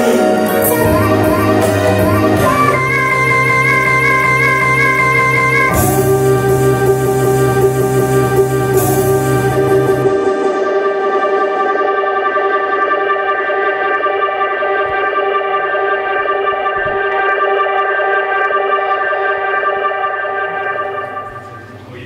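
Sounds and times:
electronic backing track: 0.0s - 22.0s
long held keyboard chord: 0.0s - 22.0s.

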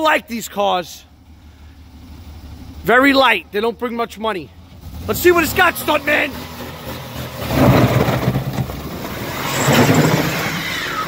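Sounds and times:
man talking: 0.0s - 1.2s, 2.8s - 6.4s
car engine idling: 0.0s - 9.9s.

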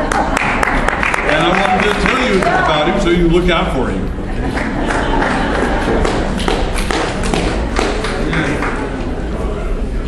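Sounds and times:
busy room noise: 0.0s - 10.0s.

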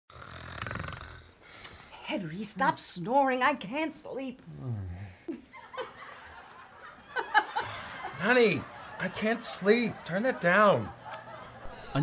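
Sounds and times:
man snoring: 0.1s - 1.4s.

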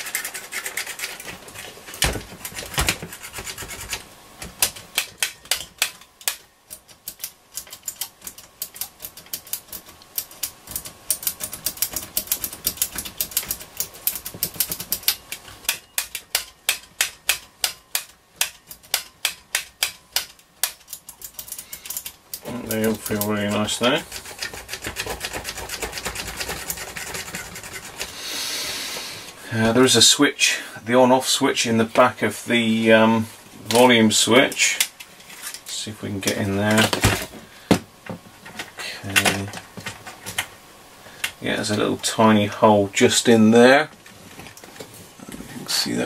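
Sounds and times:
radio hiss: 28.0s - 34.9s.

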